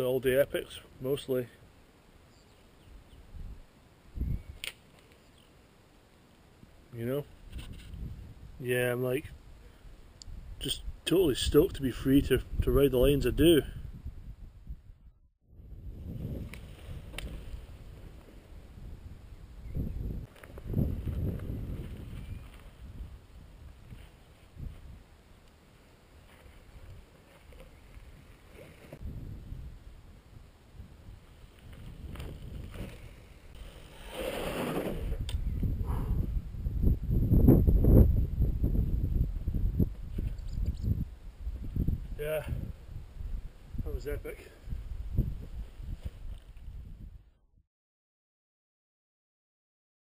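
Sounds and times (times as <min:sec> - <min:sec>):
wind buffeting microphone: 0:03.1 - 0:04.6, 0:07.4 - 0:08.6, 0:09.2 - 0:25.1, 0:28.9 - 0:33.6, 0:34.7 - 0:47.3.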